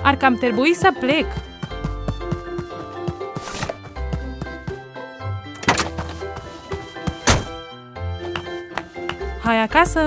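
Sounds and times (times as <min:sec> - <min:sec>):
soft background music: 0:00.0 - 0:10.0
cartoon door shutting thunk: 0:05.6 - 0:06.1, 0:07.2 - 0:07.6.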